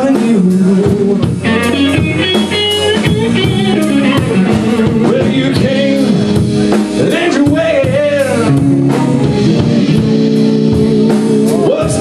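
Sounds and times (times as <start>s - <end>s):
high electric guitar notes: 0.0s - 12.0s
live blues band playing: 0.0s - 12.0s.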